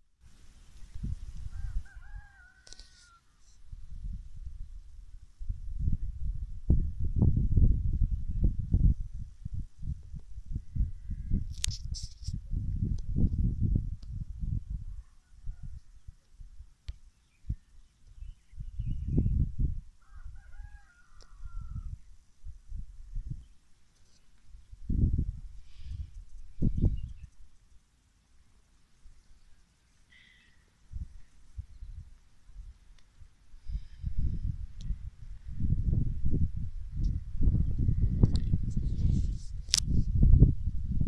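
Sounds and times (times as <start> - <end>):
wind buffeting microphone: 0.7 - 2.5, 3.7 - 16.7, 17.4 - 23.5, 24.5 - 27.4, 33.6 - 41.0
rooster crowing: 1.5 - 3.4, 20.0 - 22.0
low rumble on microphone: 33.6 - 41.0.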